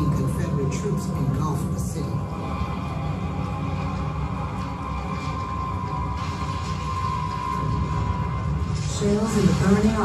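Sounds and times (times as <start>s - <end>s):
deep rumble of fire: 2.2s - 10.0s
faint fire crackling: 2.3s - 10.0s.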